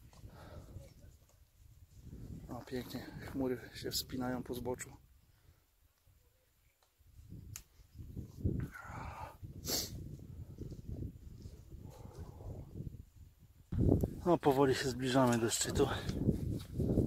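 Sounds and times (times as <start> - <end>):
wind gusting over microphone: 1.8 - 4.2, 7.2 - 17.0.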